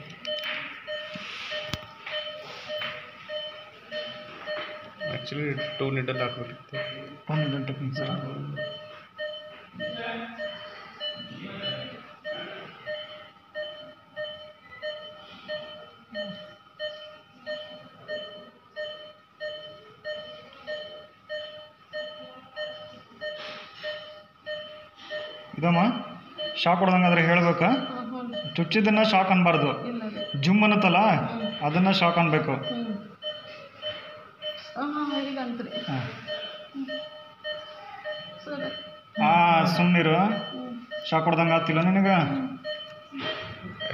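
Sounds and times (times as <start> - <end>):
electronic equipment beeping: 0.0 - 43.9.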